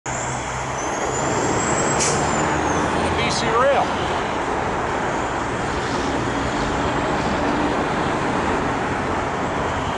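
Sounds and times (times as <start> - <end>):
diesel locomotive engine hum: 0.1 - 9.9.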